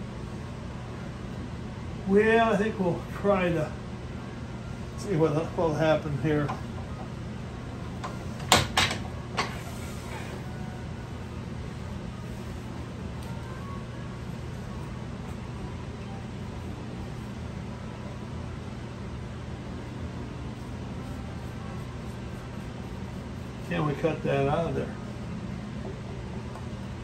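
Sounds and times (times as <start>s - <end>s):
low machine hum: 0.0s - 27.0s.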